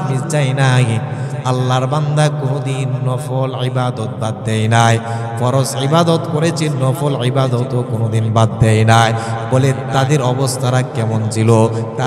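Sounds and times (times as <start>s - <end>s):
man chanting a sermon into a microphone: 0.0s - 12.0s.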